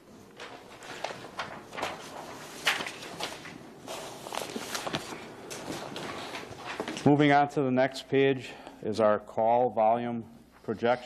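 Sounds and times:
paper rustling and taps: 0.4s - 7.1s.

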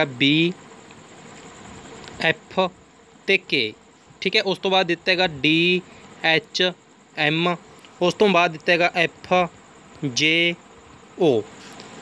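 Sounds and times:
man saying a letter: 0.0s - 0.6s, 2.2s - 10.6s, 11.2s - 11.6s
faint hum: 0.0s - 12.0s
steady low hiss: 0.0s - 12.0s.

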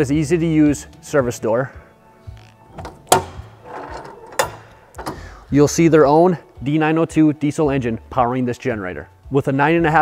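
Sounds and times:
metal door latch clicks: 2.7s - 5.3s.

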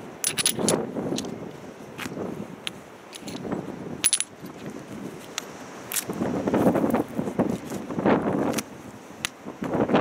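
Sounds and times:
ceramic tile pieces clinking: 0.2s - 0.8s, 3.2s - 4.4s.

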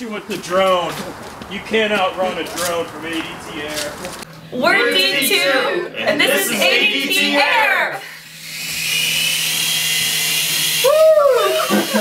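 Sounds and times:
drone propellers whining: 4.4s - 12.0s
person whooping: 10.8s - 12.0s.

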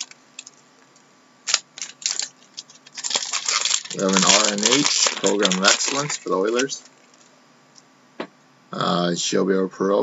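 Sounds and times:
cards flicking and rustling: 1.5s - 7.2s.

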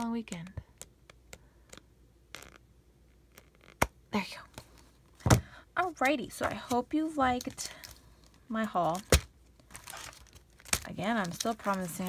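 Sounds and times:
paper pages rustling: 8.7s - 12.0s.

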